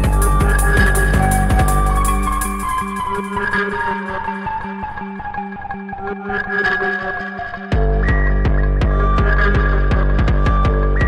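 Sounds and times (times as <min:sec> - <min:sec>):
acid electronic music: 0:00.0 - 0:11.0.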